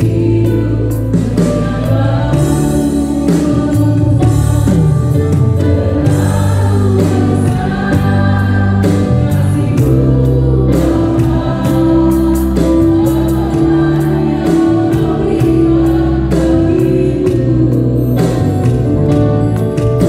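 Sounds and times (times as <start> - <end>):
bass guitar: 0.0 - 20.0
electronic drum kit: 0.0 - 20.0
keyboards: 0.0 - 20.0
worship band playing: 0.0 - 20.0
voices singing: 6.0 - 18.6.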